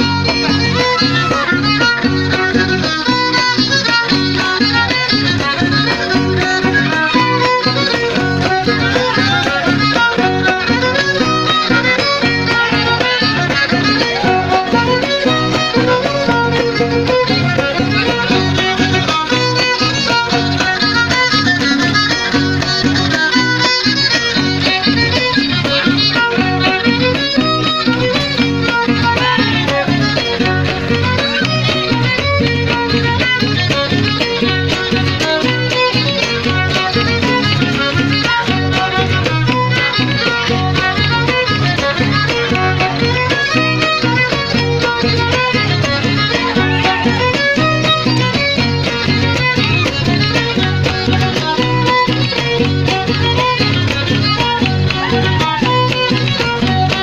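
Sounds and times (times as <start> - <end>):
strummed string rhythm: 0.0 - 57.0
violin melody: 0.0 - 57.0.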